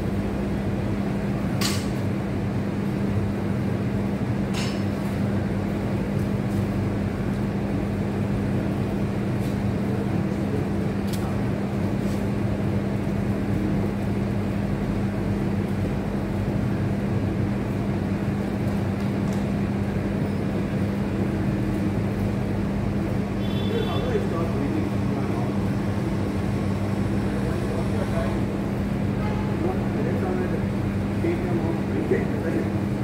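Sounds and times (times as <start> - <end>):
low machine hum: 0.0 - 33.0.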